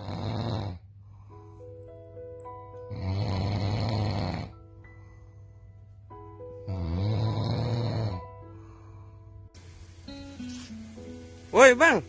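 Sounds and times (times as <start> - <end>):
man snoring: 0.0 - 0.9, 2.9 - 4.6, 6.6 - 8.4
background music: 0.0 - 12.0.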